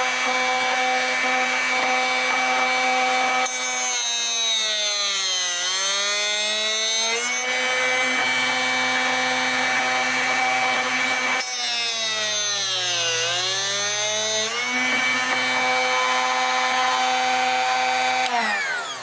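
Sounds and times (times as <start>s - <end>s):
drill bit sharpener motor grinding: 0.0s - 19.0s.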